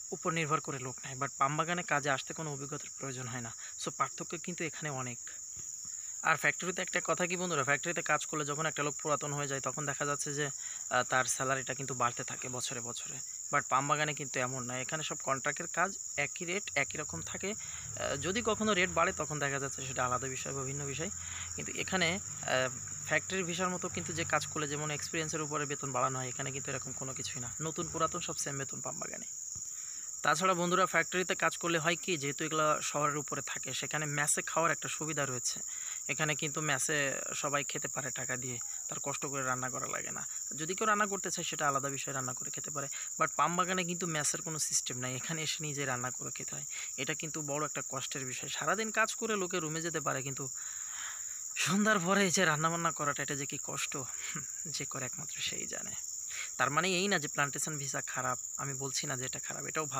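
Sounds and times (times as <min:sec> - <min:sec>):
man talking: 0:00.0 - 0:05.4, 0:06.2 - 0:29.3, 0:30.2 - 0:50.7, 0:51.6 - 0:59.9
insects droning: 0:00.0 - 0:59.9.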